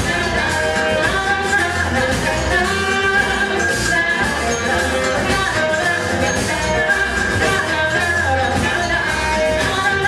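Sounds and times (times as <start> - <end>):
live band playing: 0.0 - 10.0
woman singing lead: 0.0 - 10.0.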